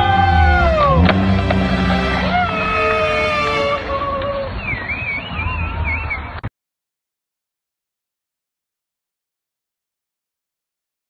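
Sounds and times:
high wavering whistle-like tone: 0:01.8 - 0:06.3.

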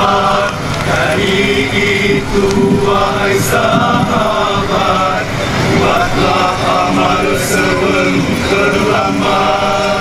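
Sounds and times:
young men singing in unison: 0:00.0 - 0:10.0.

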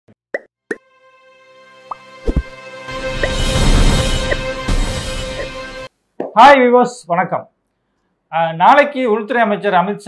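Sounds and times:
rising plopping pops: 0:00.3 - 0:00.8
sustained musical tone: 0:00.8 - 0:05.9.

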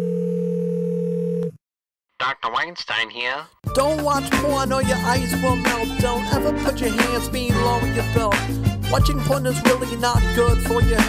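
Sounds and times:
telephone dial tone: 0:00.0 - 0:01.6.

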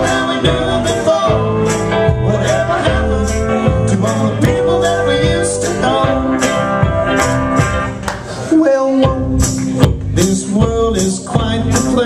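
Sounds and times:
acoustic and electric guitars: 0:00.0 - 0:12.0
percussion: 0:00.0 - 0:12.0.

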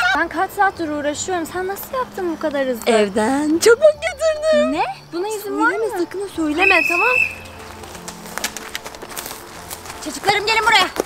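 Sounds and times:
footsteps on dirt path: 0:06.0 - 0:11.0.

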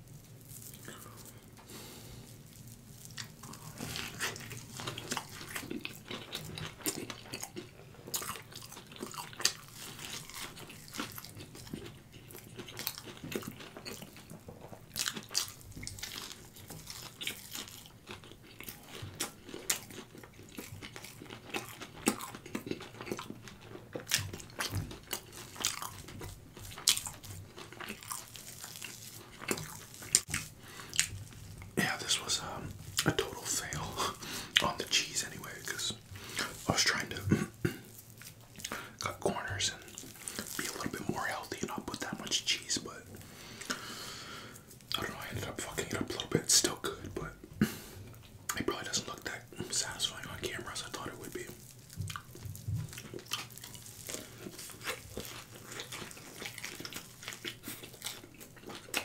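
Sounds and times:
crunchy food being chewed: 0:00.0 - 0:59.0.

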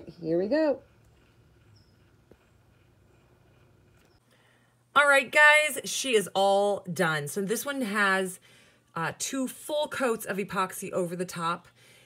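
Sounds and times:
faint low motor hum: 0:00.0 - 0:05.0.

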